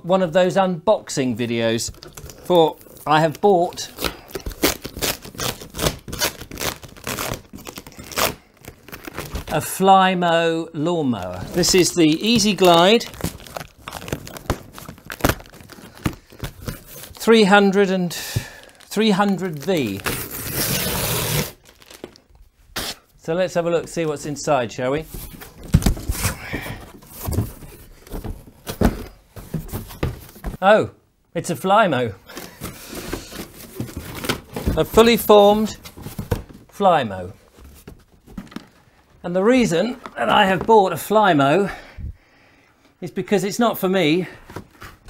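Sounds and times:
cardboard and tape ripping: 3.7 - 9.6, 12.4 - 17.2, 18.5 - 22.2, 22.8 - 23.1
cardboard flaps scraping and rustling: 25.0 - 30.6, 32.3 - 36.6.

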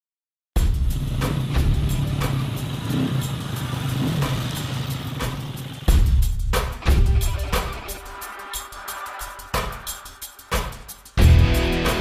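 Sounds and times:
motorcycle engine running: 0.6 - 7.9
intro music with light beat: 0.6 - 12.0.

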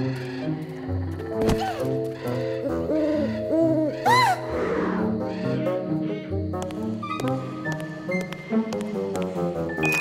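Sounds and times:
cartoon background music: 0.0 - 10.0
owl-like hoots: 1.5 - 6.2.

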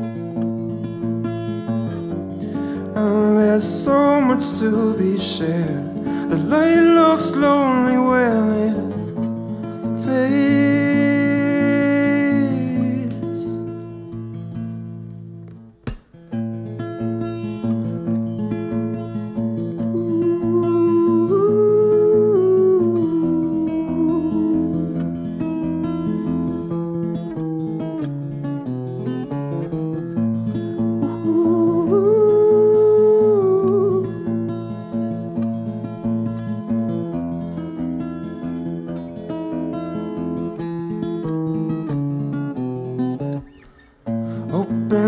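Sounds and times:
fingerpicked acoustic guitar: 0.0 - 45.0
wordless vocal melody: 2.4 - 9.2, 9.8 - 13.9, 20.0 - 25.8, 30.8 - 34.4, 44.1 - 45.0.

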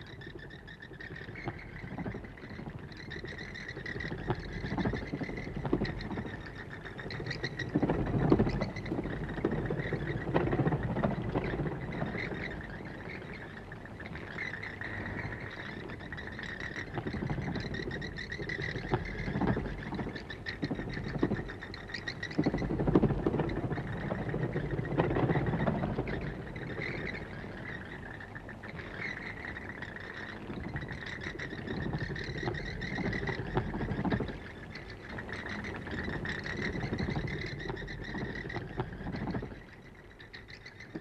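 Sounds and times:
bats squeaking and clicking: 0.0 - 41.0.

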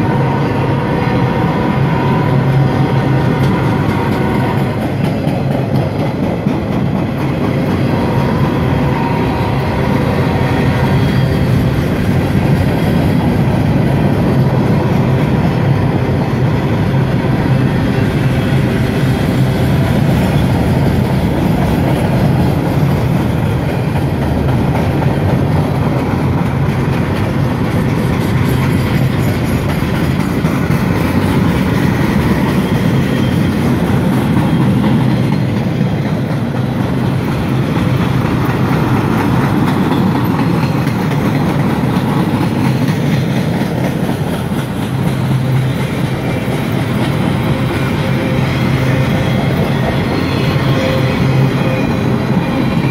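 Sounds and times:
train wheels rumbling on rails: 0.0 - 52.9.

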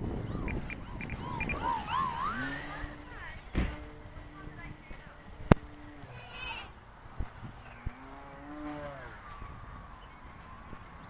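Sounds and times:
wavering whistle-like tones: 0.0 - 3.3
small motor winding up: 0.0 - 7.4
wind rumbling on microphone: 0.0 - 11.0.

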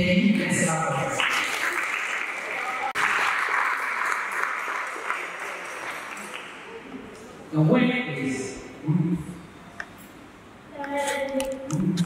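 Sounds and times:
audience applauding: 1.2 - 7.0.

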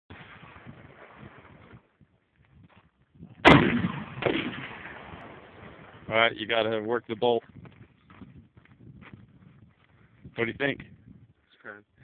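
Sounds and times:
rifle shot with echo: 3.4 - 6.1.

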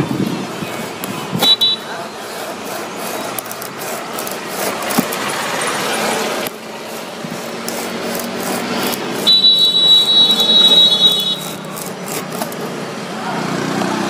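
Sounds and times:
blade scraping rubber: 0.0 - 13.0
loud high steady tone: 1.4 - 2.4, 9.1 - 11.9.

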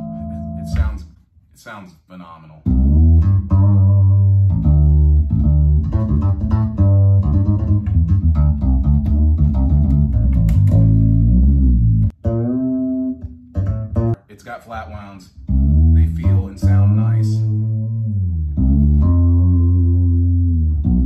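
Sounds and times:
fretless bass low notes: 0.0 - 1.2, 2.6 - 14.2, 15.3 - 21.0.

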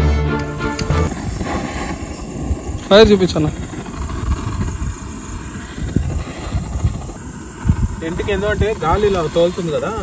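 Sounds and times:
jet-flame torch lighter burning: 0.0 - 10.0.

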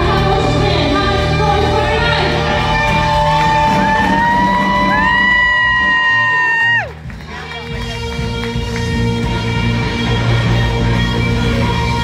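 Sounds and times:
live country band playing: 7.0 - 12.0.

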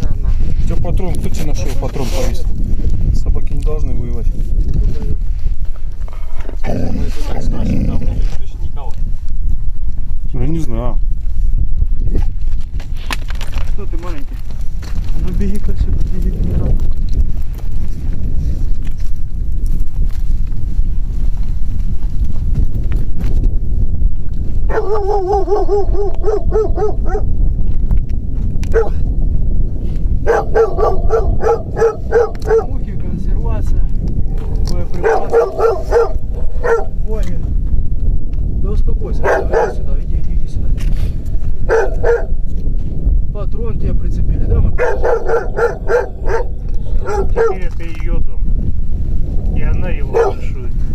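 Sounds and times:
low rumble: 0.0 - 50.9
dog yelping: 24.7 - 27.3, 28.7 - 28.9, 30.2 - 32.7, 35.0 - 37.0, 39.2 - 39.8, 41.7 - 42.3, 44.8 - 47.6, 50.1 - 50.4.

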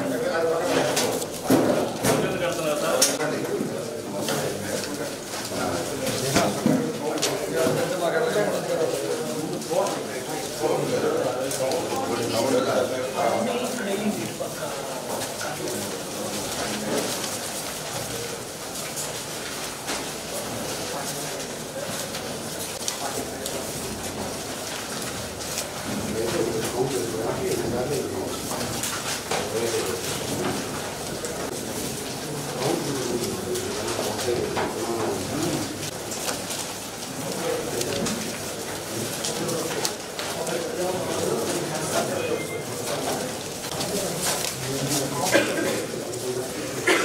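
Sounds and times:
crowd chatter: 0.0 - 47.0
murmur of voices: 0.0 - 47.0
paper crackling and rustling: 0.3 - 46.8.

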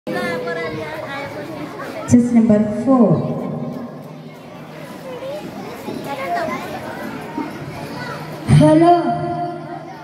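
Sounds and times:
crowd chattering: 0.1 - 10.0.

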